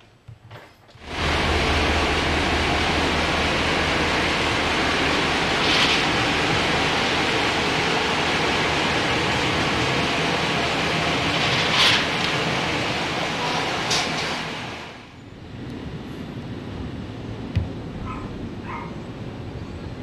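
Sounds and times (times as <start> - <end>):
truck engine rumbling: 0.9 - 20.0
loud steady noise: 1.0 - 19.5.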